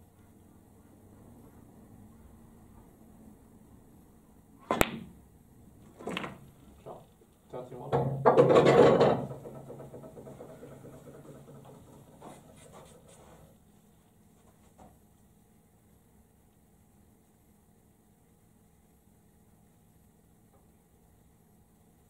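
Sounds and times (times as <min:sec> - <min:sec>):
cue tip striking ball: 0:04.6 - 0:05.2
snooker balls knocking: 0:04.7 - 0:05.2, 0:05.9 - 0:06.4, 0:07.9 - 0:12.4.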